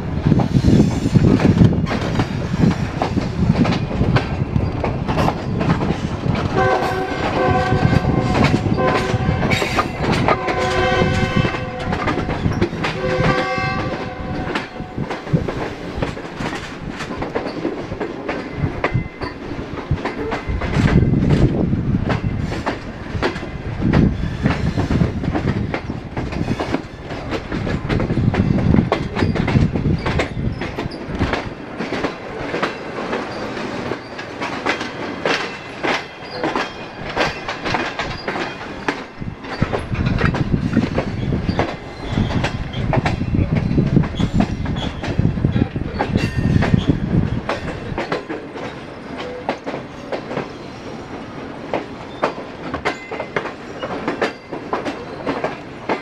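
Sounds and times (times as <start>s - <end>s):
rumble of moving train: 0.0s - 56.0s
train wheels clattering over rails: 0.0s - 56.0s
train horn blasts: 6.6s - 15.2s.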